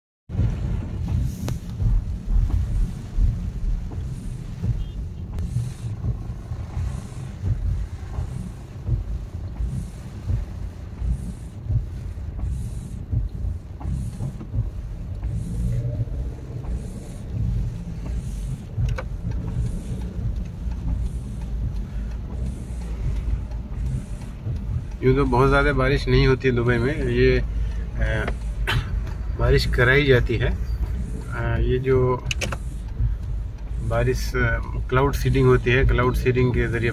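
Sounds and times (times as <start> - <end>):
car driving on wet road: 0.3 - 36.9
windscreen wipers swishing: 0.3 - 36.9.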